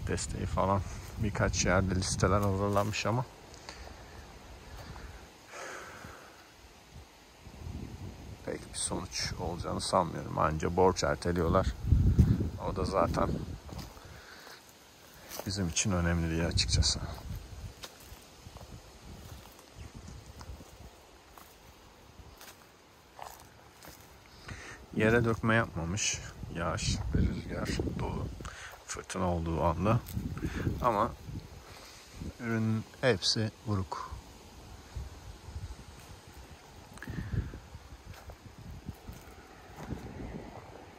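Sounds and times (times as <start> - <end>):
wind buffeting microphone: 0.0 - 3.4, 6.9 - 14.3, 15.4 - 22.6, 23.2 - 32.4, 34.5 - 40.9
footsteps on dry soil: 0.0 - 6.4, 9.4 - 33.0, 34.2 - 40.9.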